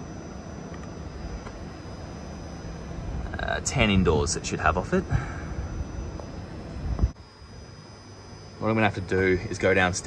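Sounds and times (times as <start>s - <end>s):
low rumbling background noise: 0.0s - 8.8s.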